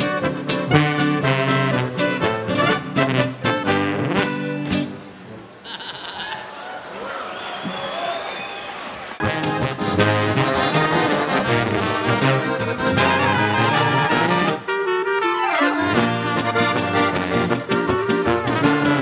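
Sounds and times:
folk band playing brisk tune: 0.0 - 4.9, 9.2 - 19.0.

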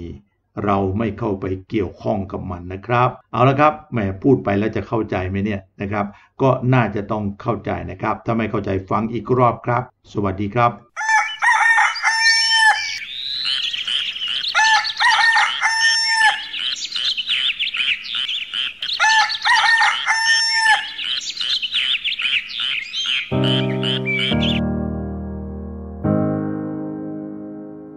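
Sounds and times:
rooster crowing: 11.0 - 16.8, 18.2 - 21.3
small birds chirping: 11.0 - 24.6
piano chords: 23.3 - 27.9.

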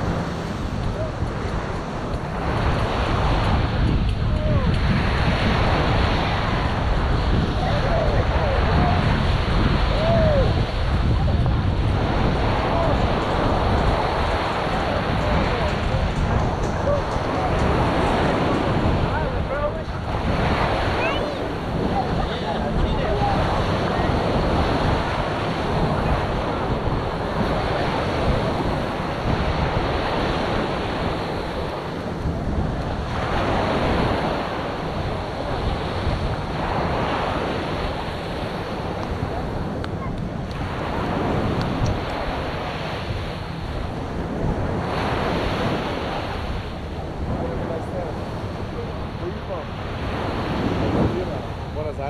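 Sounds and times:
surf rushing: 0.0 - 52.0
wind buffeting microphone: 0.0 - 52.0.

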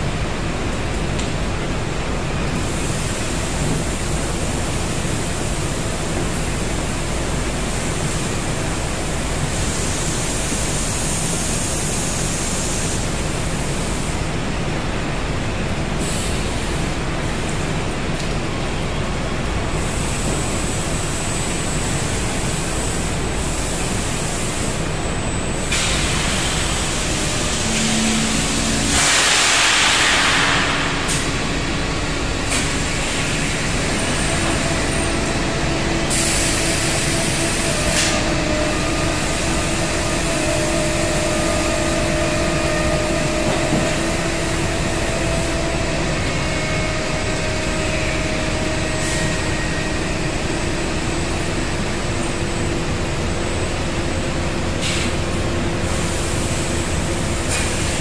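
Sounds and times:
loud mechanical rumble: 0.0 - 58.0.

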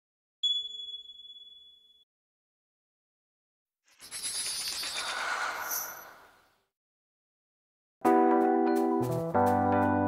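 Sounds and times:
high-pitched electronic ping: 0.4 - 2.0.

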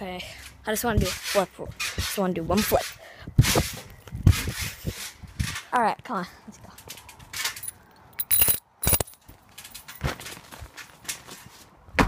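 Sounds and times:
heavy breaths on microphone: 2.9 - 5.4.

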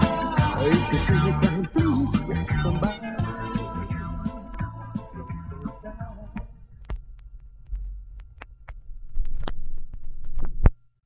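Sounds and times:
turntable low rumble: 0.1 - 10.9
vinyl clicks and pops: 5.5 - 10.8.

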